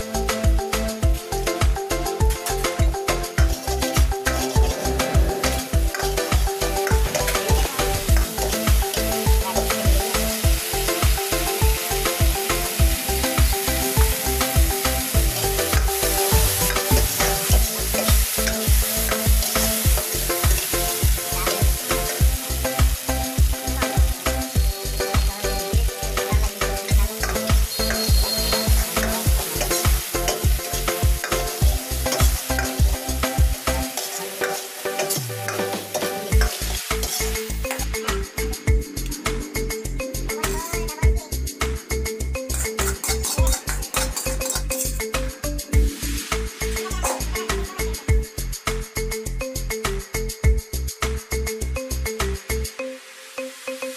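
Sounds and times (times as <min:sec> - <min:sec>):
chicken sizzling in a wok: 0:00.0 - 0:38.0, 0:42.5 - 0:45.0, 0:45.8 - 0:48.5
background music with a beat: 0:00.0 - 0:53.9
ladle scraping a wok: 0:33.8 - 0:37.6.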